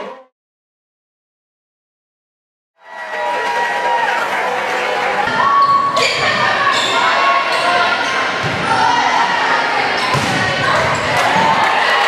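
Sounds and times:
crowd chatter echoing in hall: 2.8 - 12.0.

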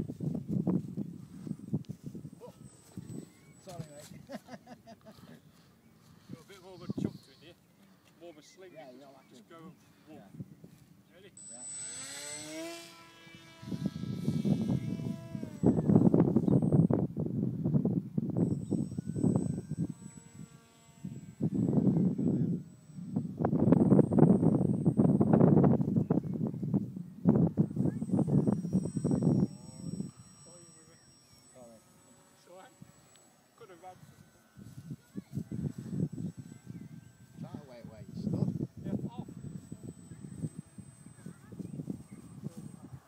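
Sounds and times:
electric motor rising whine: 0.0 - 4.6, 11.0 - 43.0
faint high whine: 0.0 - 43.0.

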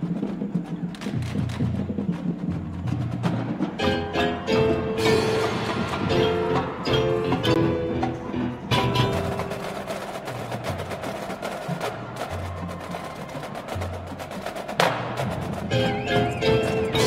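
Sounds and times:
marching drumline tapping: 0.0 - 17.0
wind instruments: 0.0 - 17.0
loud percussion hit: 3.8 - 9.6
mallet percussion: 3.8 - 10.8, 15.2 - 17.0.

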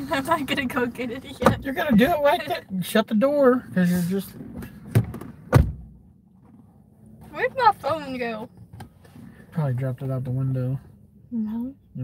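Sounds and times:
car door thump: 1.3 - 2.2, 4.4 - 6.6.

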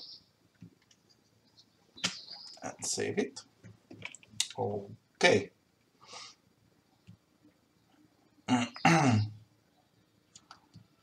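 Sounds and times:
man clearing his throat: 8.5 - 9.3
faint clicks: 10.3 - 10.9.

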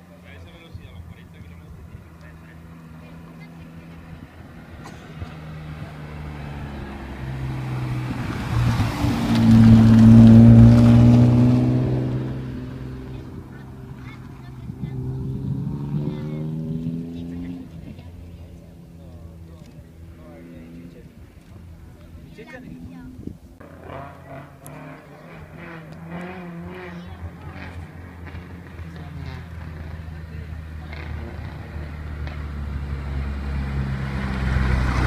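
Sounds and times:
rally car engine passing: 0.0 - 35.0.

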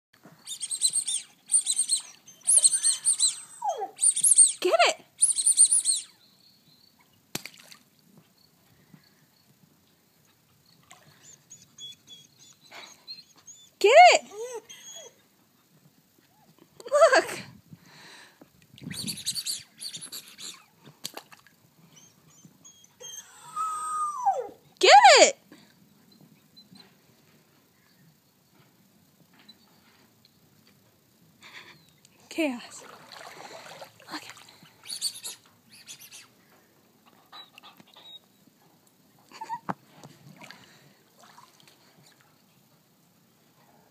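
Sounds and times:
puppy crying and whining: 0.4 - 6.2, 11.2 - 15.2, 22.0 - 24.6.

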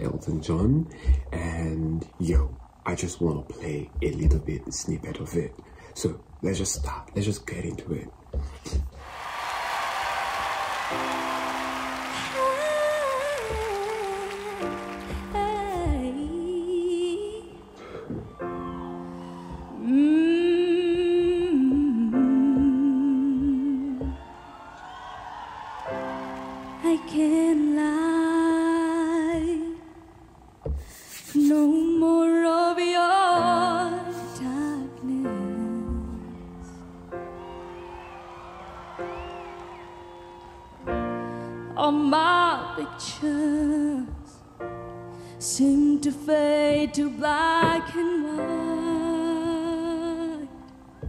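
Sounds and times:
piano chords: 9.0 - 30.8, 31.9 - 51.0
held keyboard chords: 10.2 - 24.4
woman singing wordless notes: 11.9 - 24.4, 26.7 - 30.1, 31.4 - 36.8, 41.6 - 44.7, 45.3 - 50.9
woman humming a melody: 12.3 - 17.8, 19.3 - 24.2, 31.2 - 32.4.

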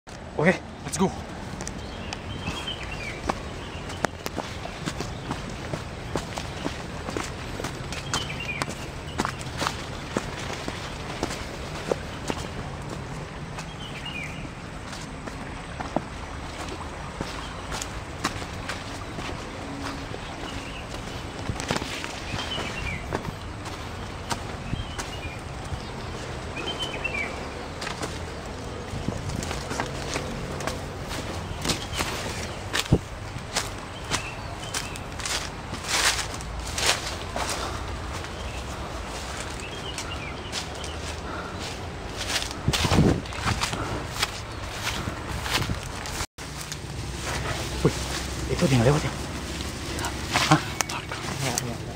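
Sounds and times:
leaves crackling and brushing: 1.3 - 15.5, 16.3 - 51.9
footsteps on dirt path: 1.3 - 51.9.

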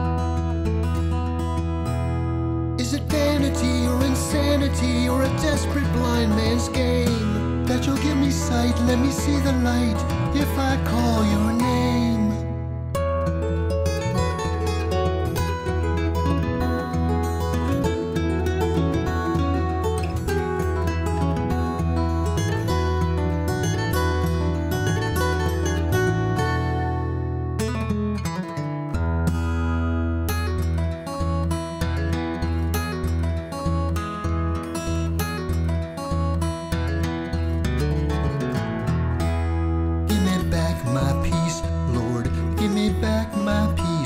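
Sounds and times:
acoustic guitar playing: 0.0 - 44.0.

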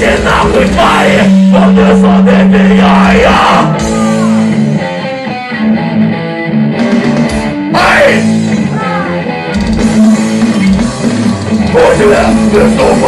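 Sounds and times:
electric guitar riff: 0.0 - 13.0
live rock band playing: 0.0 - 13.0.

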